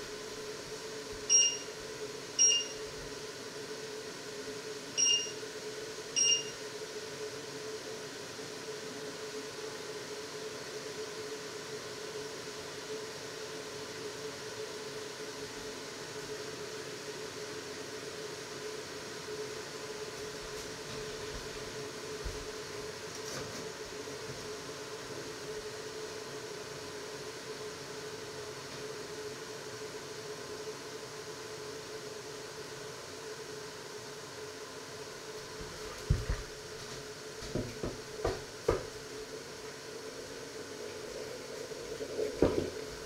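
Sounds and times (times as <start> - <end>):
steady hum: 0.0 - 43.0
cooktop touch control beeps: 1.3 - 1.8, 2.4 - 2.8, 5.0 - 5.4, 6.2 - 6.6.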